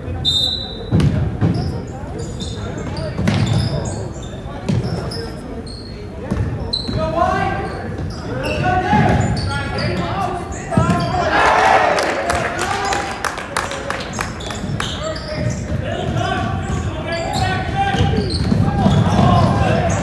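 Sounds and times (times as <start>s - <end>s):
sneaker squeaks: 0.0s - 11.4s, 14.0s - 20.0s
players shouting: 8.4s - 14.4s, 15.8s - 20.0s.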